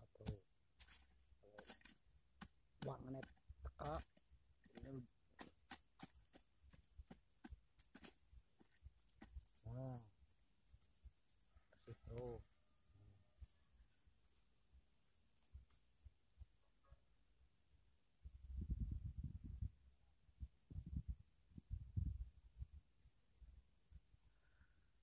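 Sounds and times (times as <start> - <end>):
hand hoe chopping into soil: 0.2 - 9.6.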